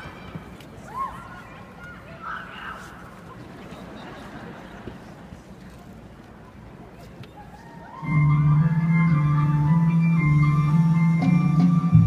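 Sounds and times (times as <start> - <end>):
music over arena sound system: 8.0 - 12.0.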